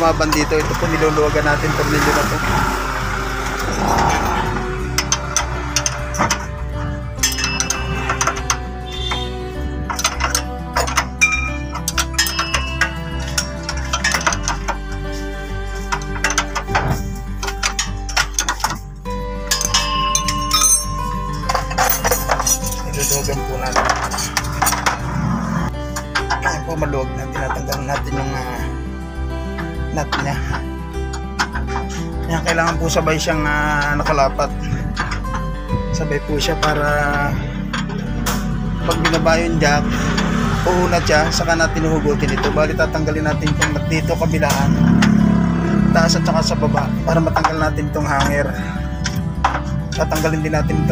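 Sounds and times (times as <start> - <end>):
background music: 0.0 - 50.9
wrench clinking on metal nut: 5.0 - 15.2, 15.8 - 25.2, 25.8 - 26.6, 29.6 - 35.5, 41.0 - 45.2.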